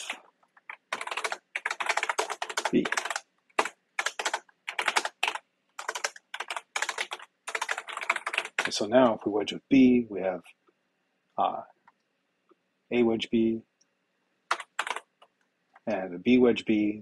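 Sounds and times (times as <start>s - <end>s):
fast typing on keyboard: 0.0s - 8.8s, 14.5s - 15.3s.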